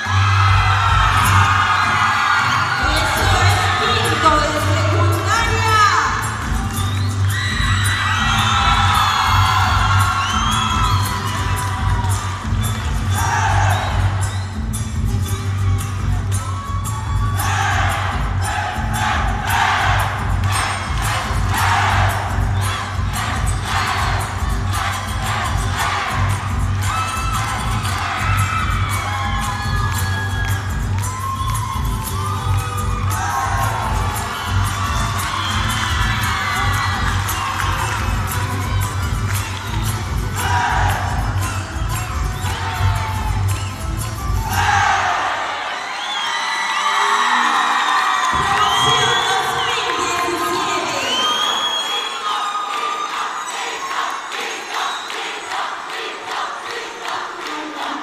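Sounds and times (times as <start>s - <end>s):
loud music with steady beat: 0.0s - 45.2s
crowd shouting and cheering: 0.0s - 58.0s.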